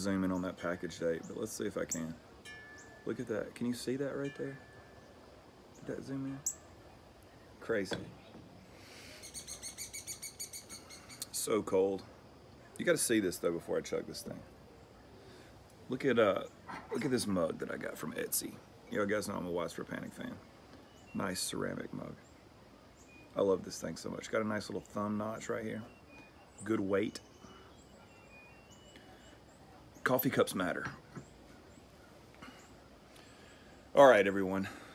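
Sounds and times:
faint high bird chirps: 0.0 - 12.0, 19.7 - 34.9
bird trilling: 1.3 - 6.8, 9.0 - 11.4, 25.6 - 29.5.

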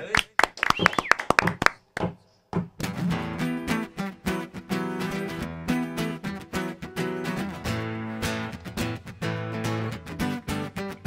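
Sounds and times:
acoustic guitars strumming: 2.6 - 11.0.

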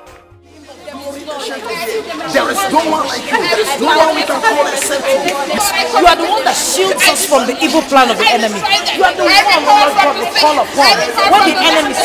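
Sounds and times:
voices praying aloud: 0.0 - 12.0.

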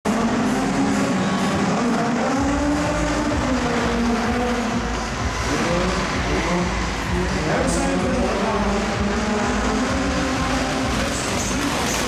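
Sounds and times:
race car engines revving: 0.1 - 12.0.

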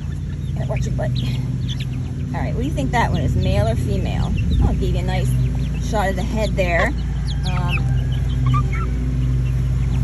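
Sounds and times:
chicks peeping: 0.0 - 10.0
low mechanical hum: 0.0 - 10.0.

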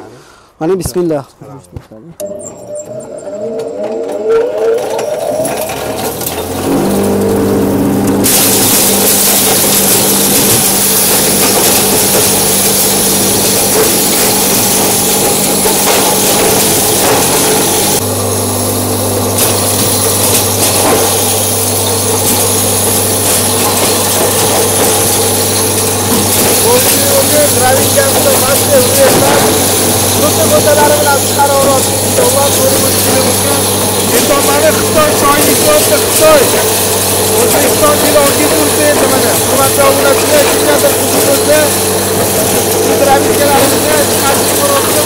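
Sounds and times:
corn cobs grinding: 2.2 - 45.0
electric grain crusher humming: 2.2 - 45.0.

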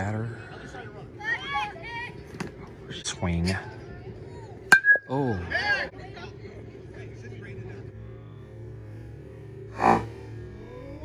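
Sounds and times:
metal bat hitting ball: 4.7 - 5.1.

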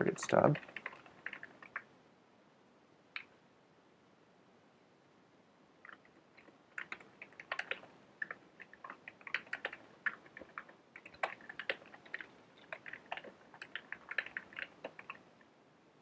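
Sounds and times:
computer keyboard typing: 0.4 - 1.9, 5.8 - 15.2.

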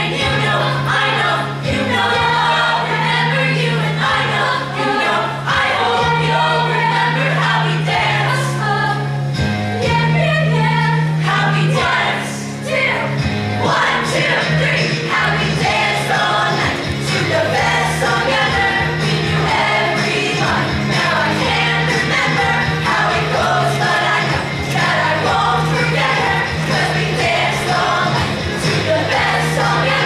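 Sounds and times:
mixed choir singing pop: 0.0 - 30.0.

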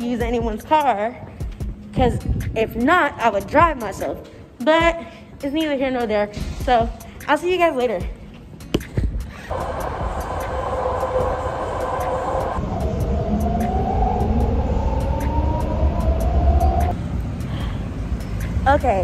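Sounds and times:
rising whine: 9.5 - 17.0
train rumble with rail noise: 9.5 - 19.0.

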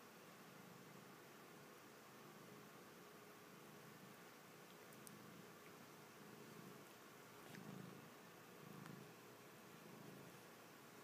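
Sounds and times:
cat purring: 2.2 - 11.0.

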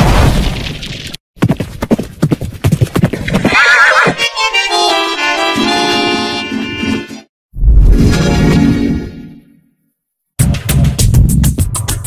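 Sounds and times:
horse hooves galloping: 1.4 - 3.5
horse whinnying: 3.5 - 4.2
held music notes: 4.2 - 7.2.

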